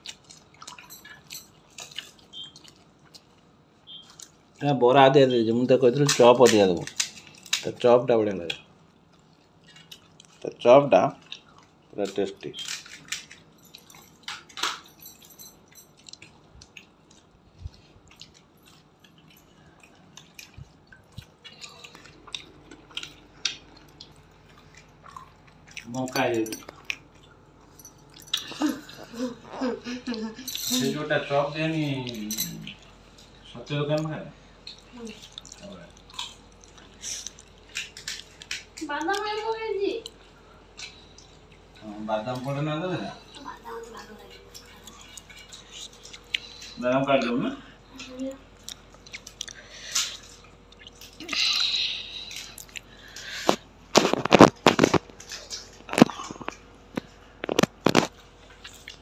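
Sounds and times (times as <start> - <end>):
wet eating sounds: 0.0 - 14.8, 15.8 - 59.0
crisp clicks of fried puris cracking: 5.8 - 14.8, 34.6 - 40.2, 52.3 - 59.0
crisp crunching clicks: 52.4 - 59.0.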